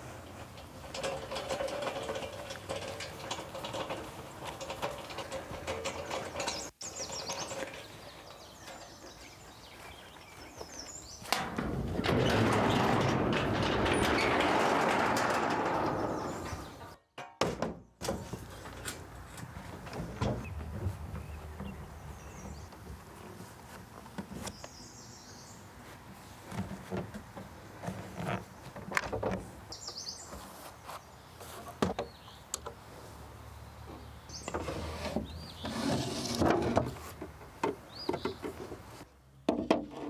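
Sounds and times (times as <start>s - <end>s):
metal hand truck rattling: 0.0s - 9.6s, 11.2s - 17.0s
garage door rattling open: 0.6s - 6.7s, 11.3s - 18.6s.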